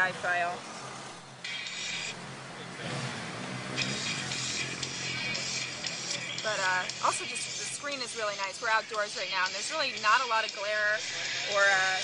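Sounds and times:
movie soundtrack music on phone speaker: 1.4 - 2.2, 3.7 - 12.0.

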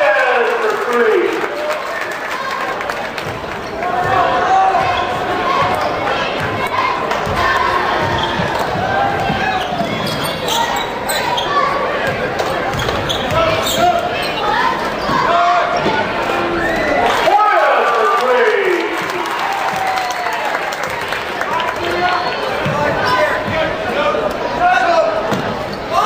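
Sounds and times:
indistinct shouts and voices: 3.8 - 26.0.

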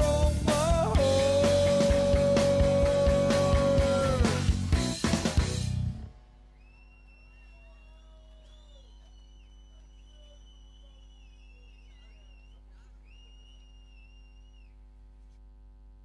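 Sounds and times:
band playing: 0.0 - 6.1
faint steady hum: 5.8 - 16.0.

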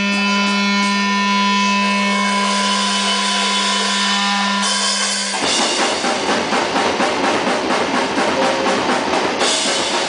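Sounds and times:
electric guitar buzzing drone: 0.0 - 10.0.

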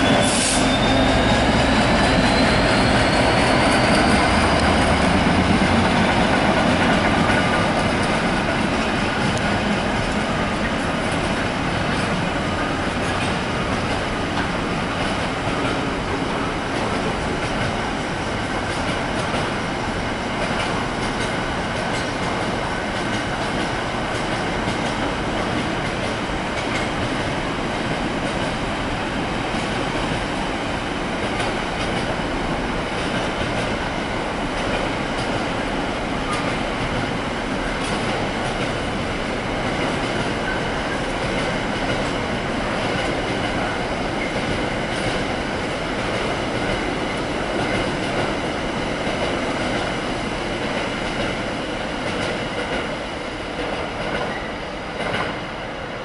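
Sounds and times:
freight train rolling past: 0.0 - 56.0.

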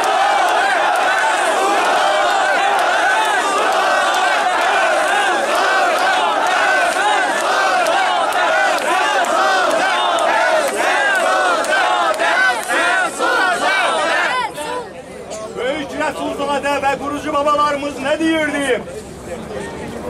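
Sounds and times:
crowd of marchers shouting: 0.0 - 14.8.

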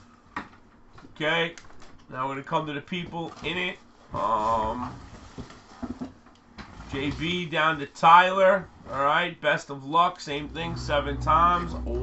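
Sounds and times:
short low sound: 10.3 - 12.0.

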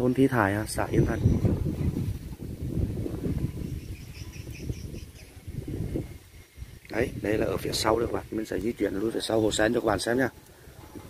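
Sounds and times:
small bird chirping: 3.4 - 7.0.

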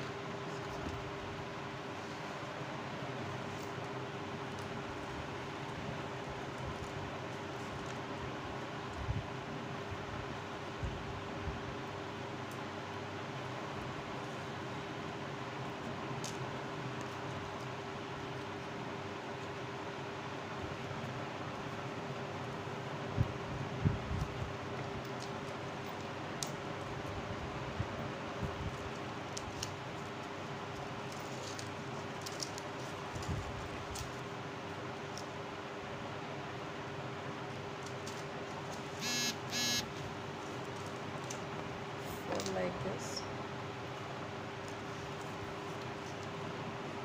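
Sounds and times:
paper rustling and clicking: 28.8 - 34.3
steady hum: 38.8 - 40.6
short high-pitched sounds: 39.0 - 39.8.

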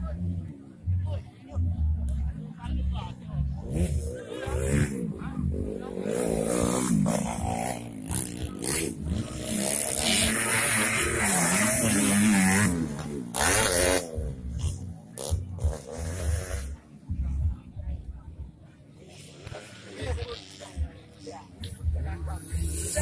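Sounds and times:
dirt bike engines revving: 0.0 - 23.0.

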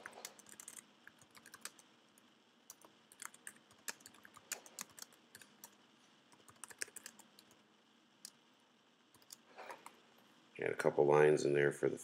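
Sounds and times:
keyboard typing clicks: 0.0 - 1.8, 6.4 - 7.6, 9.2 - 9.4.

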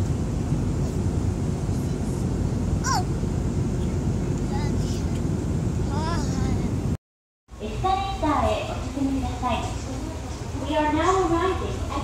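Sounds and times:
airliner cabin drone: 0.0 - 12.0.

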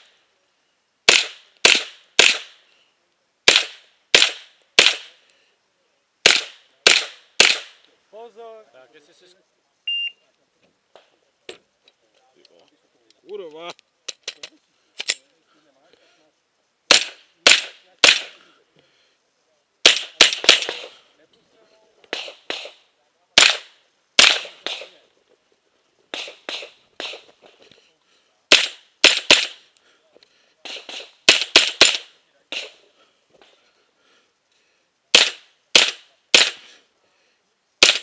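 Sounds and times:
rifle shots: 1.1 - 2.6, 3.4 - 5.2, 6.2 - 7.8, 16.9 - 18.4, 19.8 - 21.0, 22.1 - 22.8, 23.4 - 25.0, 26.1 - 27.3, 28.5 - 29.6, 30.6 - 32.8, 35.1 - 36.7, 37.8 - 38.0.

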